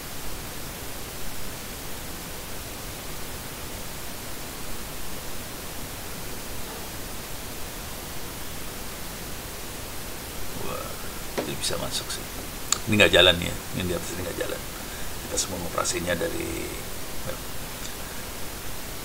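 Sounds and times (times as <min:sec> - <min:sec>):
steady background hiss: 0:00.0 - 0:19.0.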